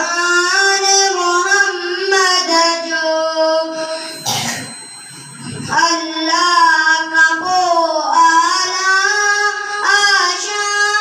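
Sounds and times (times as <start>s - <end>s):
boy singing into a microphone: 0.0s - 4.8s, 5.4s - 11.0s.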